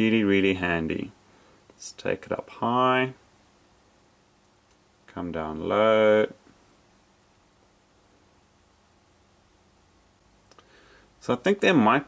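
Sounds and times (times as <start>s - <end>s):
faint clicks: 4.4s - 4.9s.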